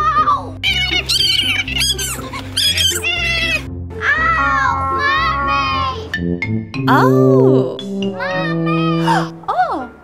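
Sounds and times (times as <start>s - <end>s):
background music: 0.0s - 10.0s
woman pretend crying: 6.9s - 8.0s.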